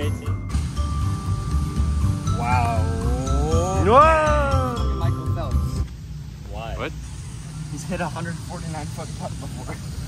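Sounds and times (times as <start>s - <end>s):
music with low beat: 0.0s - 6.0s.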